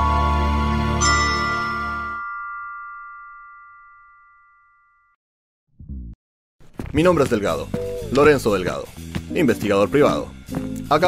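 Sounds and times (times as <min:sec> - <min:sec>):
bell-like ding: 0:01.0 - 0:05.2.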